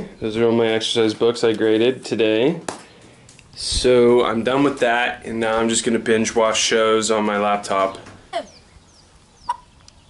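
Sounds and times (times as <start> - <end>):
chicken squawk: 9.4 - 9.7.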